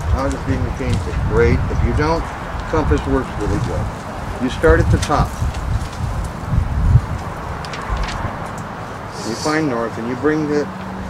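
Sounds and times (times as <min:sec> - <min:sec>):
hiss: 0:09.1 - 0:09.8.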